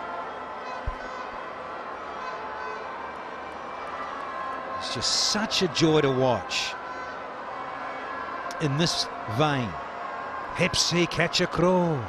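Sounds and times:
stadium crowd hubbub: 0.0s - 12.0s.

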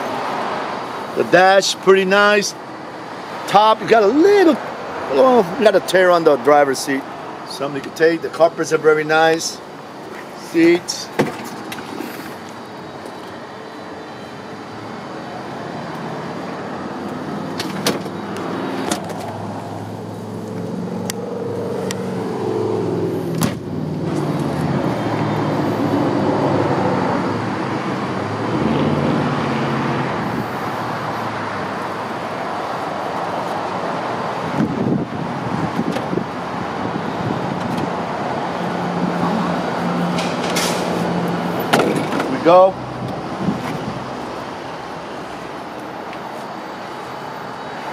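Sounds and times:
engine and road traffic hum: 0.0s - 47.9s.

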